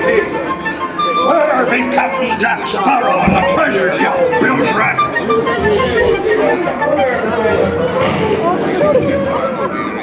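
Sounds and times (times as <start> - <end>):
voices talking over one another: 0.0 - 10.0.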